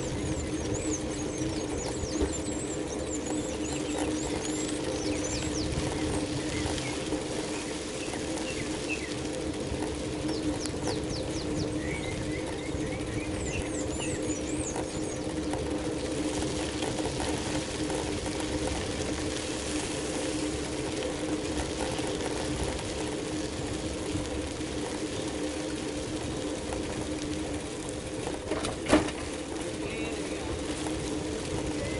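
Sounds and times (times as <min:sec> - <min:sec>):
birds chirping: 0:00.0 - 0:19.3, 0:29.3 - 0:31.9
bicycle rolling on asphalt: 0:00.0 - 0:31.9.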